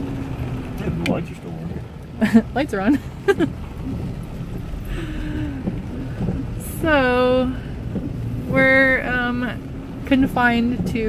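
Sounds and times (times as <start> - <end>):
truck cabin low rumble: 0.0 - 11.0.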